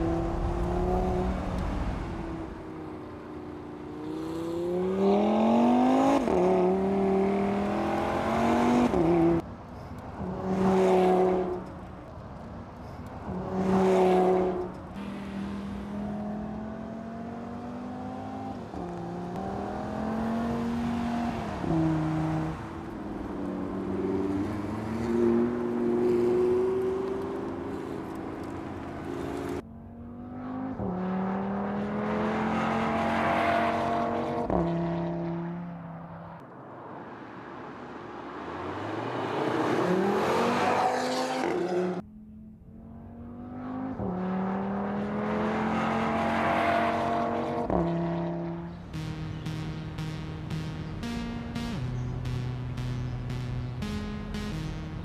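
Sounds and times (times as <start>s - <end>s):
car engine accelerating hard: 0.0s - 2.6s, 13.4s - 36.3s, 42.7s - 55.0s.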